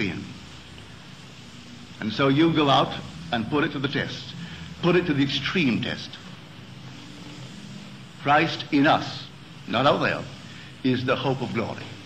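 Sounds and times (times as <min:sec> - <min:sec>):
faint hum: 0:00.0 - 0:12.0
tape hiss: 0:00.0 - 0:12.0.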